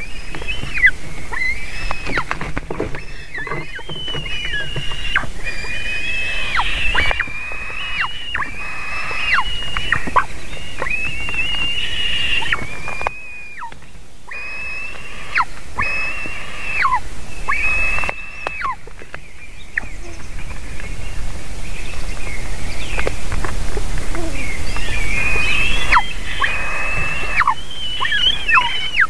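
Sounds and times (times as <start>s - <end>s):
eagle chicks begging calls: 0.0s - 29.0s.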